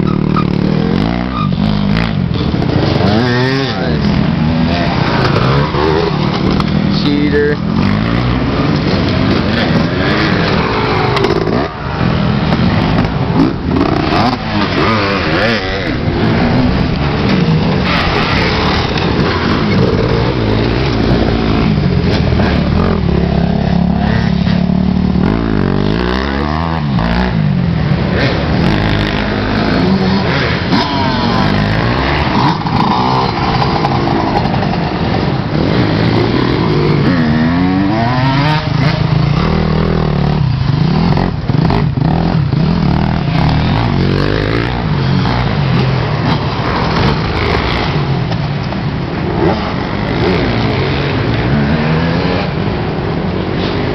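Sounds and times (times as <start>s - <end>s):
dirt bike engines revving past: 0.0s - 53.9s.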